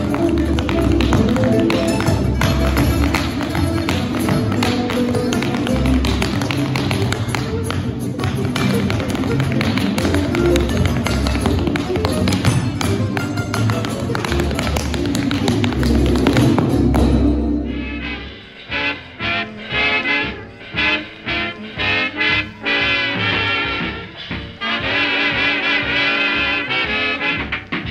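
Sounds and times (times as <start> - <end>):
tap shoes on hard floor: 0.0 - 17.2
recorded music: 0.0 - 27.9.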